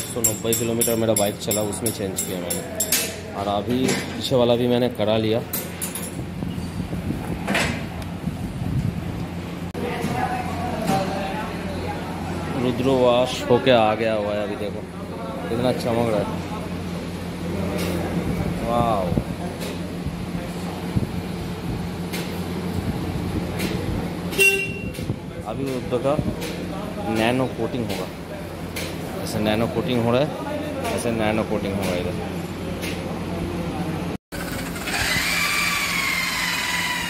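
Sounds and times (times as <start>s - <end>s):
workshop low hum: 0.0s - 37.0s
short sharp horn toot: 24.3s - 25.0s.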